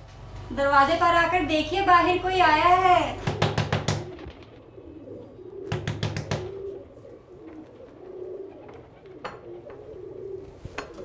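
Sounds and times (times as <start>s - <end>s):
pigeons cooing: 2.0s - 11.0s.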